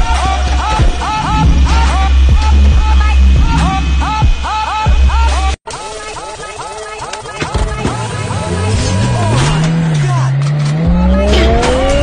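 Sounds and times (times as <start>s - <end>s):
car engine revving: 0.0s - 5.6s, 7.7s - 12.0s
low rumble: 0.0s - 5.6s.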